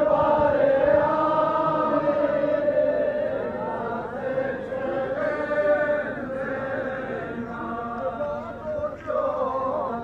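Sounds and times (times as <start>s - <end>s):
men chanting a mourning lament: 0.0s - 10.0s.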